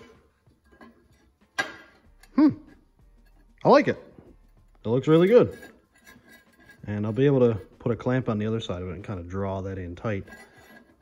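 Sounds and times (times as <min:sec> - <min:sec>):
metallic knock and scrape: 0:00.0 - 0:11.0.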